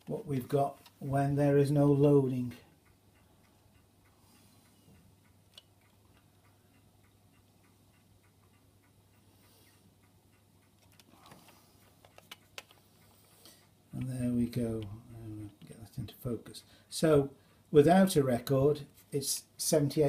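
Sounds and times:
light clicks: 0:10.3 - 0:14.2.

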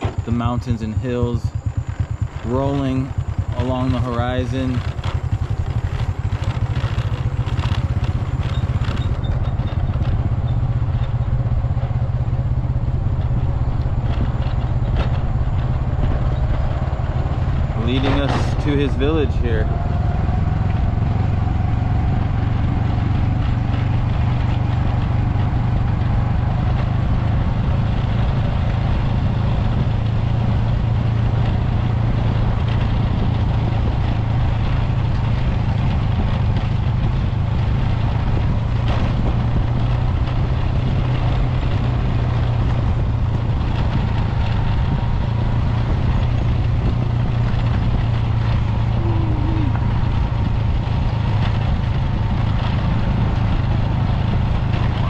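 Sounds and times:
motorcycle engine running: 0:00.0 - 0:55.0
road noise: 0:00.0 - 0:55.0
wind: 0:00.0 - 0:55.0.

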